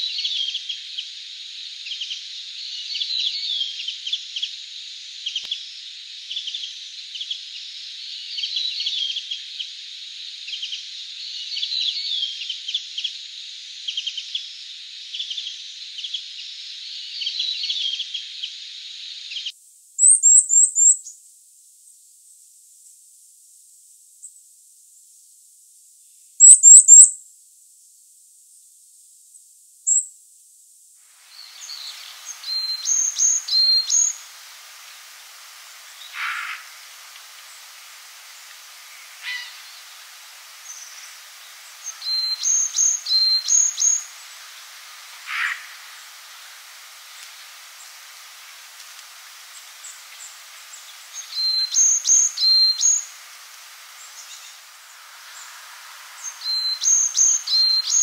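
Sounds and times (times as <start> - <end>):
bird twittering: 20.0 - 21.0, 26.4 - 27.1, 38.9 - 39.8, 41.8 - 44.1
bird high thin call notes: 39.2 - 39.6.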